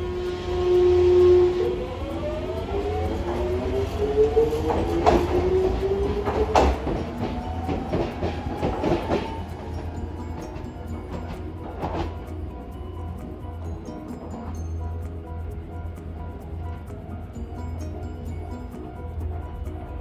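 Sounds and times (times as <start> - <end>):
wheels clacking over rails: 1.3 - 12.5.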